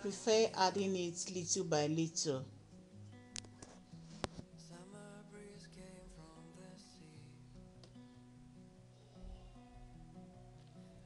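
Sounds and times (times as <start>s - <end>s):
soft guitar background music: 0.0s - 11.0s.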